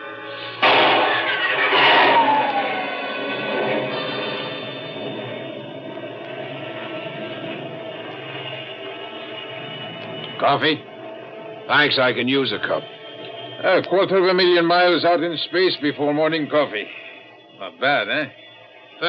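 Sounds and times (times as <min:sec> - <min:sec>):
rocket blasting off: 0:00.2 - 0:08.6.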